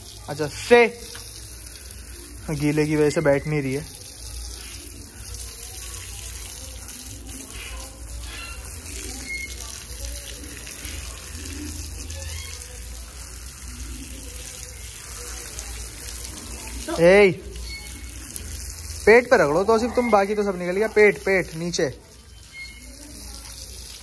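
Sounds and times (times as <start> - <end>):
garden hose spraying water: 0.0 - 24.0
water splashing on brick floor: 0.0 - 24.0.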